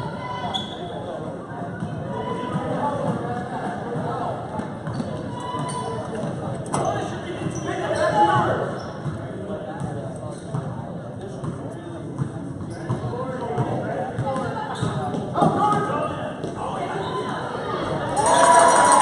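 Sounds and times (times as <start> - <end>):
spectators chattering: 0.0 - 19.0.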